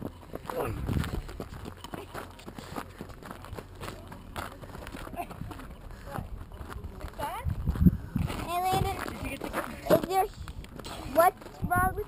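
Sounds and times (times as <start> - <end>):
footsteps on gravel: 0.0 - 12.0
people talking: 3.8 - 7.5, 8.3 - 12.0.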